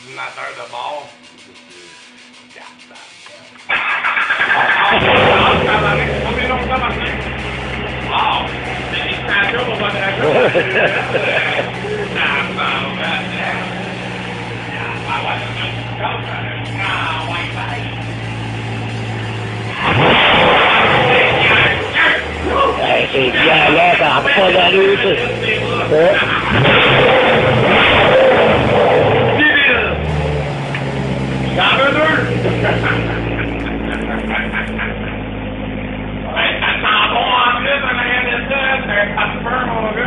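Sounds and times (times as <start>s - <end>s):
car engine idling: 0.0s - 40.0s
sudden loud burst: 3.7s - 34.8s.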